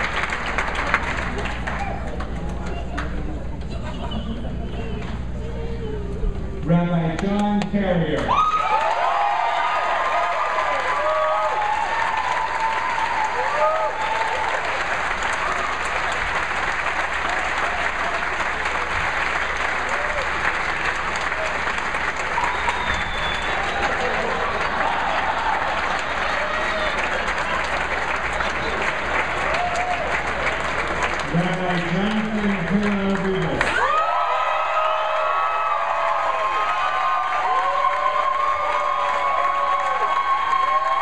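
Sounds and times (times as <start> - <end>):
audience applauding: 0.0 - 5.2, 8.2 - 41.0.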